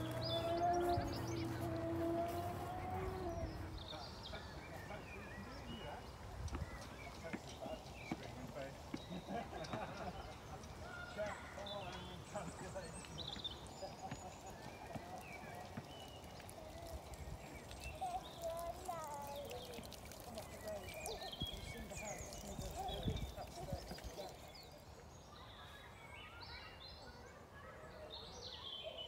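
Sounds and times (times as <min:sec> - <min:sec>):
footsteps on gravel: 0:00.0 - 0:03.8
birds chirping: 0:00.0 - 0:29.0
faint voices talking: 0:09.7 - 0:29.0.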